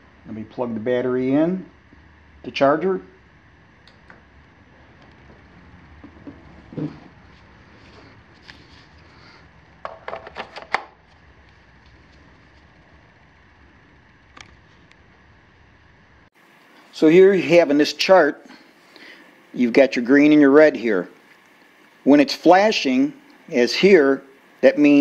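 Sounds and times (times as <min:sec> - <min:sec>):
faint room hum: 0:00.0 - 0:25.0.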